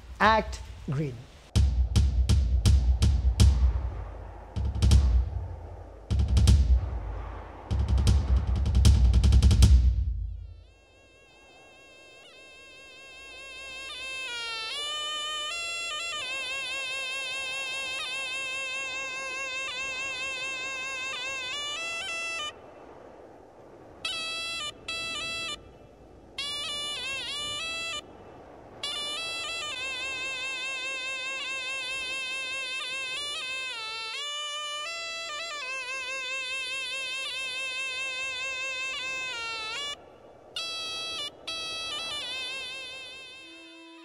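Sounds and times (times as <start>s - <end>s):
reed pipe playing slow melody: 10.4s - 23.1s, 24.0s - 44.0s.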